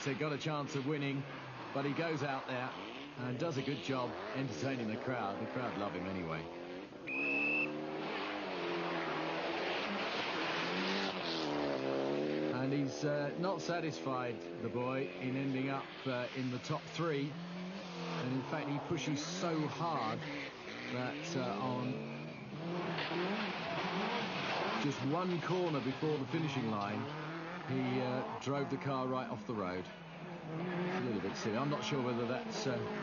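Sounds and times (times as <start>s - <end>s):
rally car engine revving: 0.0s - 33.0s.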